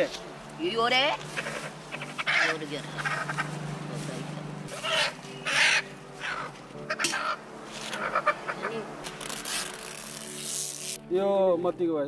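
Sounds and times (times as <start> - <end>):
crows cawing: 1.2 - 3.6, 4.7 - 8.8.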